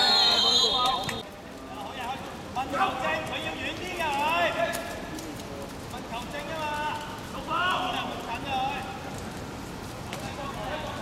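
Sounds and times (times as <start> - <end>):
players shouting: 0.0 - 1.2.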